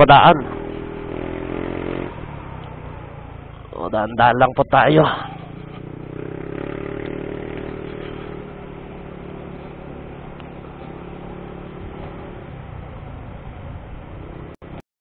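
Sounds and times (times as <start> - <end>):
motorcycle engine running: 0.0 - 14.8
wind and road noise: 0.0 - 14.8.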